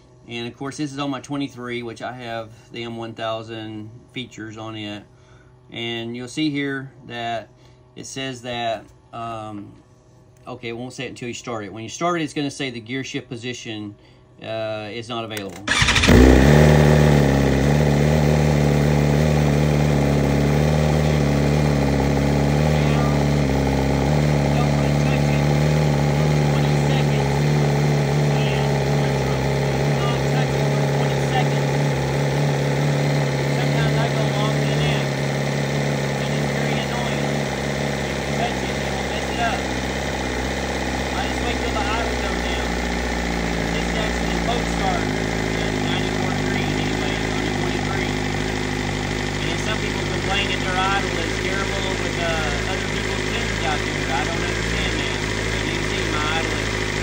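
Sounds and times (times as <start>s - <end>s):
motorcycle engine idling: 15.7s - 57.0s.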